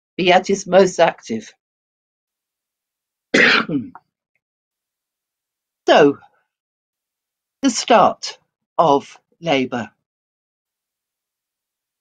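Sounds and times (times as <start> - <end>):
woman clearing her throat: 3.4 - 4.1.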